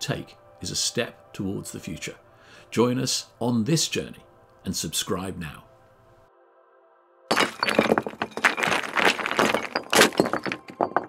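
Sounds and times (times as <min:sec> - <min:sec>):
small fragments cracking and tumbling: 0:07.3 - 0:11.0.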